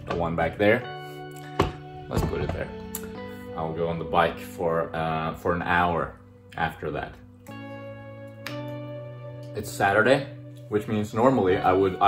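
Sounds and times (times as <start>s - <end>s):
guitar chords: 0.0s - 12.0s.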